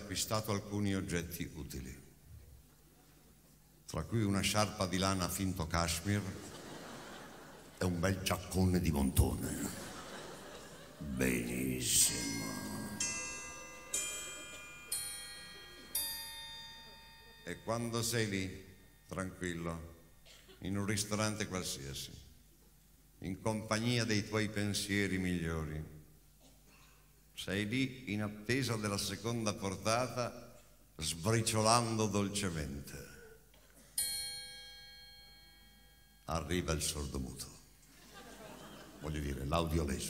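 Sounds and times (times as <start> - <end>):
struck bell-like notes: 11.0 - 20.2.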